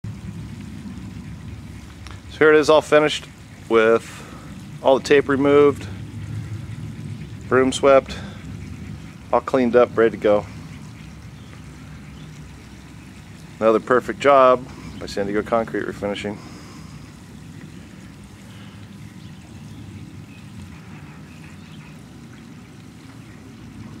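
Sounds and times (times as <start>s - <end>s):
low rumbling outdoor background noise: 0.0s - 24.0s
running pool water: 0.0s - 24.0s.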